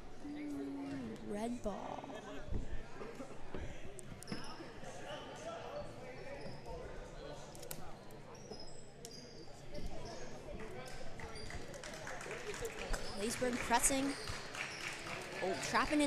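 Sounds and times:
murmur of voices: 0.0 - 16.0
shoe squeaks: 4.2 - 4.8, 6.3 - 6.9, 8.3 - 10.4, 14.0 - 14.8.

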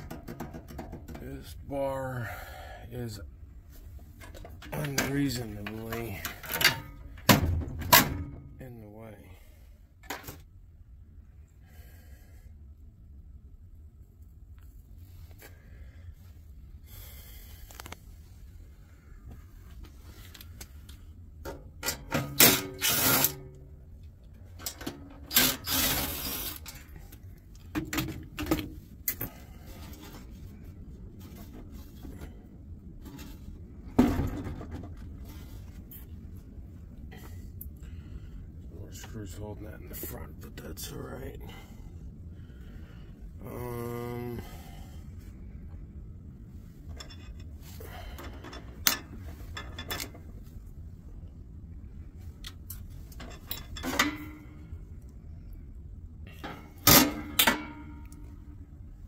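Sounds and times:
tools clattering on metal chassis: 0.0 - 1.6, 4.1 - 8.6, 21.4 - 23.6, 24.4 - 27.0, 27.6 - 30.4, 33.0 - 35.5, 46.8 - 50.4, 52.7 - 54.7, 56.3 - 58.4.

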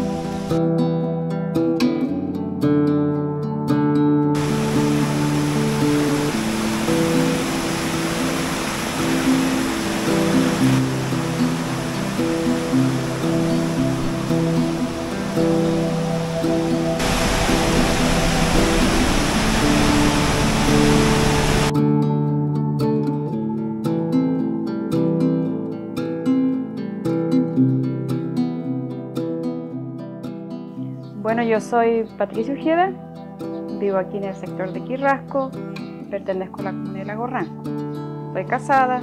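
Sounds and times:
stream rushing over rocks: 0.0 - 0.5, 4.4 - 21.7
acoustic guitar music: 0.0 - 39.0.

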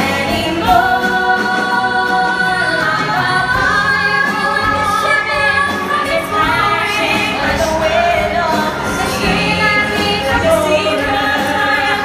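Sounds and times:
orchestral accompaniment: 0.0 - 12.0
piano: 0.0 - 12.0
women singing a duet: 0.0 - 12.0.

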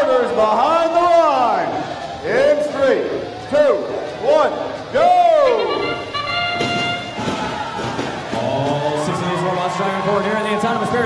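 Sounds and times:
crowd noise: 0.0 - 11.0
brass trumpet fanfare: 5.5 - 7.3.

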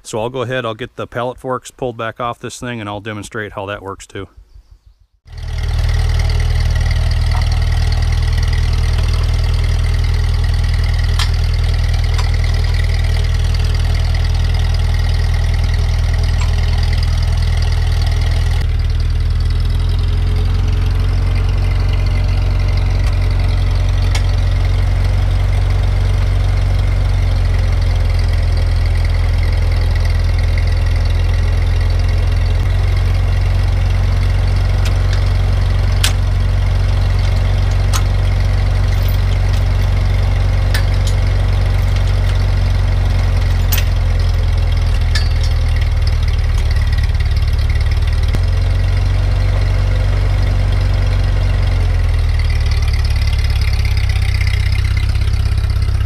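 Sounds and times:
tractor engine idling: 5.3 - 56.0.

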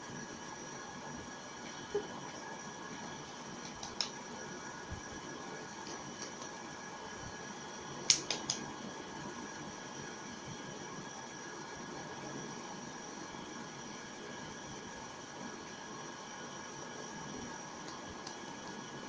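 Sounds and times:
room hiss: 0.0 - 19.0
quick clicks: 3.6 - 4.2, 8.1 - 8.6.

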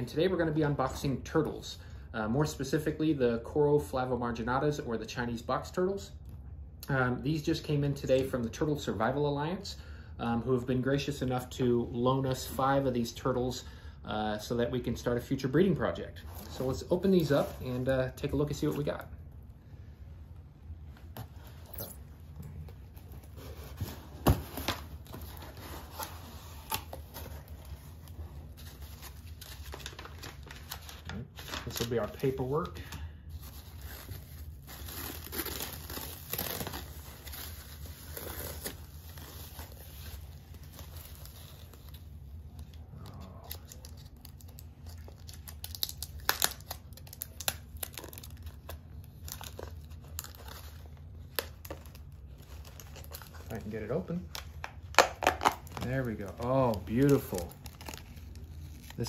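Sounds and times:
cardboard rustling: 22.7 - 32.6
tape peeling off plastic: 33.7 - 53.5, 54.3 - 59.0.

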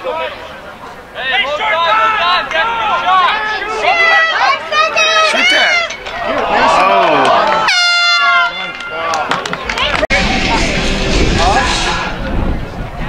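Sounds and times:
players and spectators shouting: 0.0 - 12.4.

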